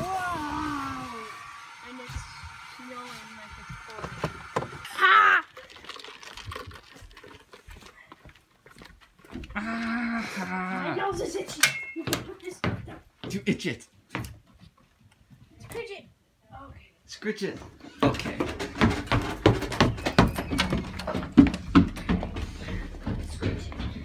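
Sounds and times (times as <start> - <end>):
high-pitched cry: 4.8 - 5.6.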